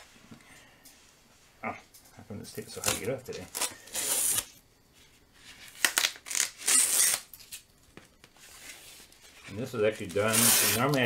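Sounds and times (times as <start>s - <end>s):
masking tape ripping off paper: 2.8s - 4.5s, 5.7s - 7.6s, 10.0s - 11.0s.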